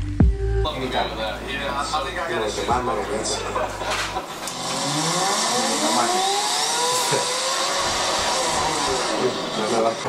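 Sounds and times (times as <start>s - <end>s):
engine revving: 3.4s - 10.0s.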